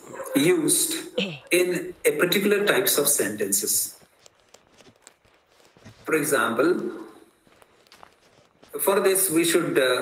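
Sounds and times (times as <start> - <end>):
man lecturing: 0.3 - 4.0, 6.0 - 7.2, 8.7 - 10.0.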